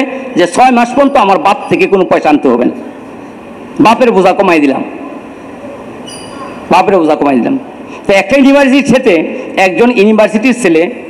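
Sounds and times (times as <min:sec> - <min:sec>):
background hiss: 0:00.0 - 0:11.0
man speaking: 0:06.7 - 0:11.0.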